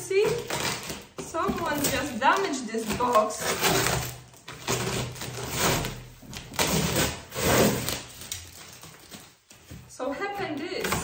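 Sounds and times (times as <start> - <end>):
packing paper rustling: 0.3 - 11.0.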